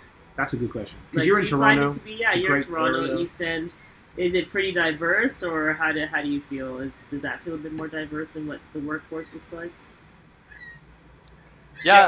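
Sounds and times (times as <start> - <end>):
person saying yeah: 0.8 - 3.5.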